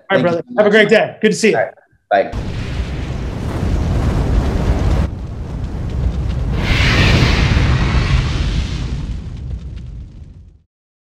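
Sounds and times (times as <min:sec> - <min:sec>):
low rumbling explosion boom: 0:02.4 - 0:10.6.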